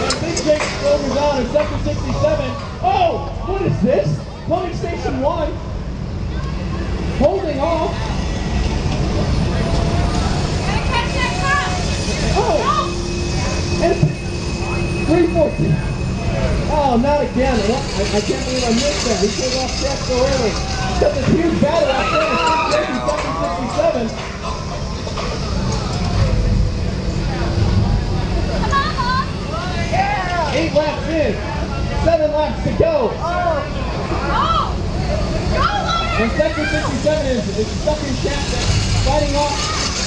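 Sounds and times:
low rumble: 0.0 - 32.9, 33.6 - 40.0
electric kart motor whine: 5.8 - 32.1, 33.2 - 40.0.

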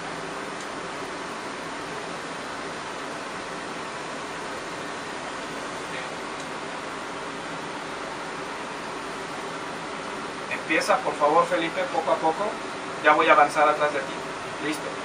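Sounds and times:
machinery hiss and hum: 0.0 - 15.0.

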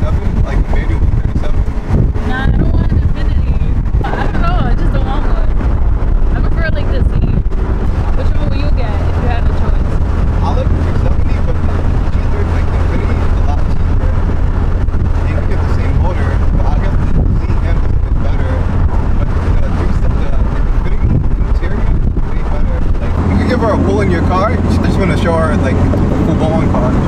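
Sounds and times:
car engine and road rumble: 0.0 - 27.0
wind noise on microphone: 0.0 - 27.0.

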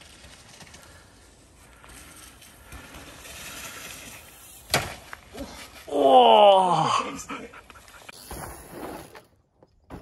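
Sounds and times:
person groaning: 5.9 - 7.3.

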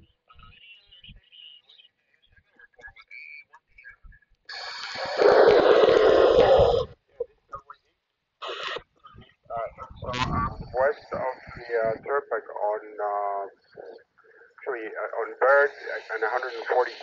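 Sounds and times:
hissy garbled radio reception: 0.1 - 7.7, 8.4 - 17.0.

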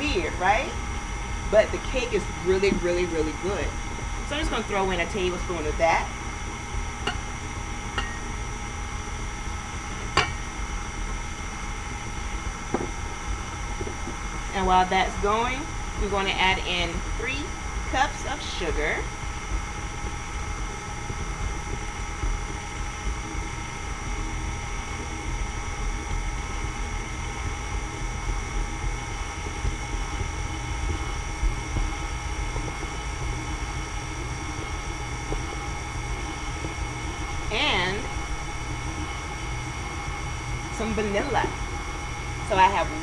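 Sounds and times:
stand mixer motor running: 0.0 - 43.0.

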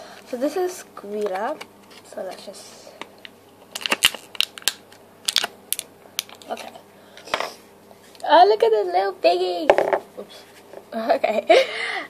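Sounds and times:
plastic wrapper crinkling: 3.2 - 6.7.

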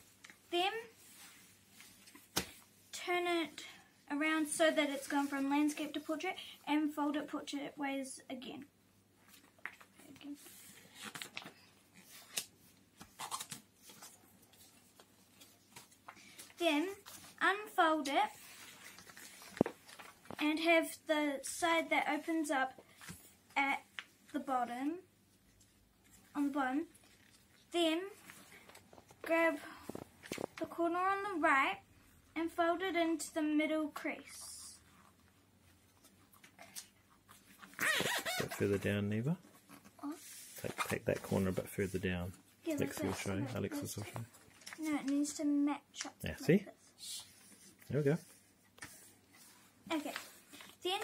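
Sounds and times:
paper crackling and rustling: 9.3 - 17.4, 18.3 - 20.4, 42.7 - 45.2, 48.8 - 51.0.

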